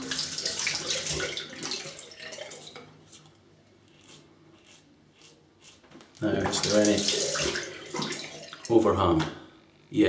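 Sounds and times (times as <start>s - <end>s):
tap water running into sink: 0.0s - 2.9s, 6.4s - 8.9s
razor scraping stubble: 2.6s - 6.8s.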